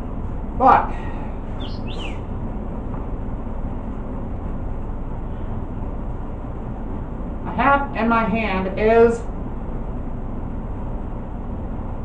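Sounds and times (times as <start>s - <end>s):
low room hum: 0.0s - 12.0s
high falling chirps: 1.5s - 2.3s.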